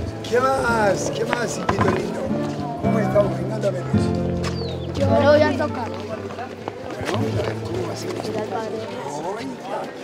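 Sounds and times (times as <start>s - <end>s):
boys talking and calling out: 2.0s - 10.0s.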